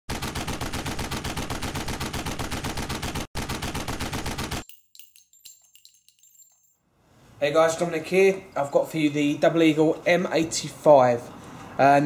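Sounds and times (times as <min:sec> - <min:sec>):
automatic gunfire: 0:00.1 - 0:04.6
faint metallic clinks: 0:04.6 - 0:06.9.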